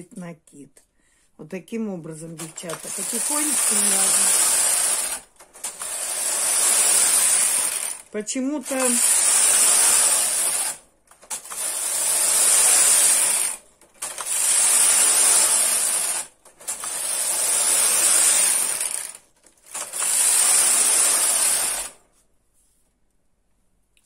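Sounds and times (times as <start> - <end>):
knitting machine carriage clattering: 2.3 - 22.0.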